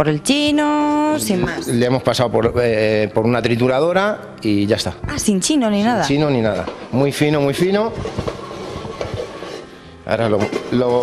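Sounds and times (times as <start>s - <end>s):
pan sizzling: 6.0s - 11.0s
spoon scraping metal pan: 6.4s - 11.0s.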